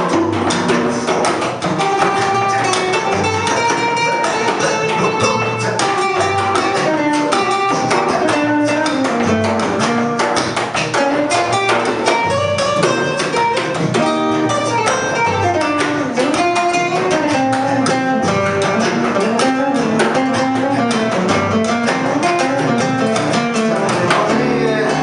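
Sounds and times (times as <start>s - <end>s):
acoustic guitar melody: 0.0s - 25.0s
plucked double bass: 0.0s - 25.0s.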